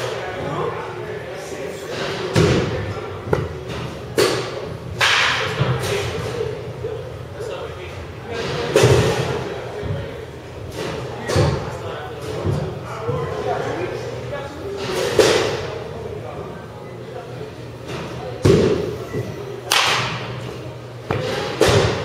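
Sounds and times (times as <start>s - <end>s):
baseball bat hitting ball: 4.2s - 5.6s, 19.7s - 20.3s.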